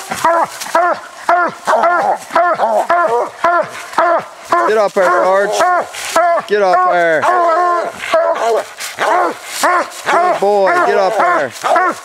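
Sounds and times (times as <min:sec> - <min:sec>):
dog barking: 0:00.2 - 0:12.0.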